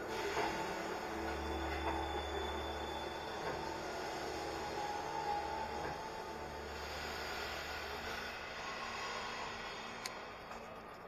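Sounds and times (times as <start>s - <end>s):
train carriage rumble and hiss: 0.0s - 11.0s.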